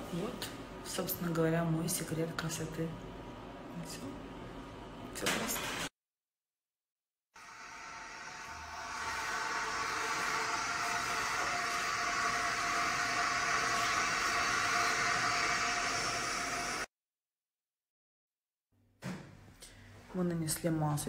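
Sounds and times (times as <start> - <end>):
fan whirring with whine: 7.4 - 16.9.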